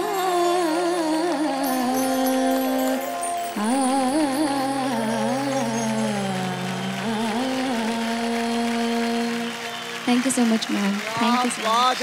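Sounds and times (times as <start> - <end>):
girl singing long note: 0.0 - 9.7.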